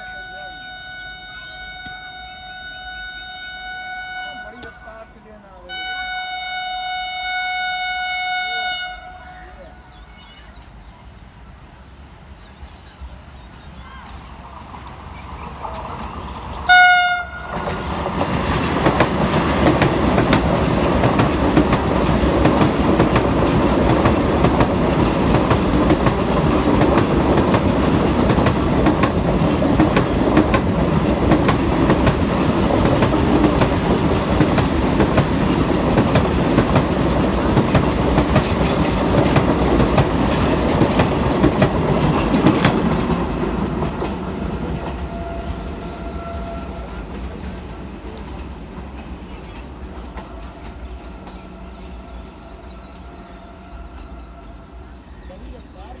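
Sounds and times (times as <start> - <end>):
faint train horn: 0.0 - 10.6, 16.7 - 17.8, 44.5 - 48.4, 50.0 - 56.0
train wheels rumbling on rails: 3.7 - 56.0.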